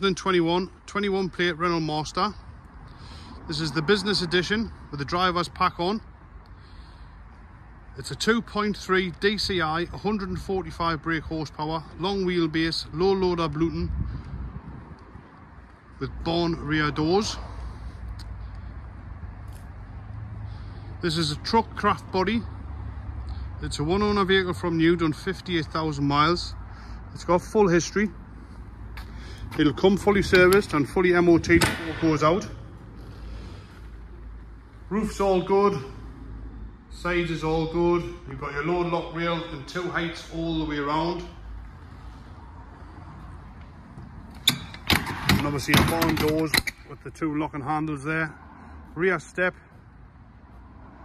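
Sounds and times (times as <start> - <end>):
door lock metallic clicks: 31.6 - 32.2, 44.3 - 46.8.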